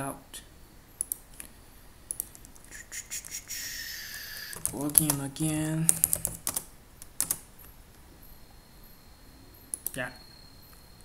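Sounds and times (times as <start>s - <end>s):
computer keyboard key clicks: 4.5s - 7.4s.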